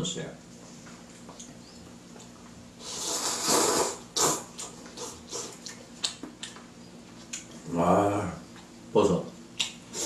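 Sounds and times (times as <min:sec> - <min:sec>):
man slurping noodles: 0:02.8 - 0:05.6
wet chewing smacks: 0:04.2 - 0:07.6, 0:09.6 - 0:10.0.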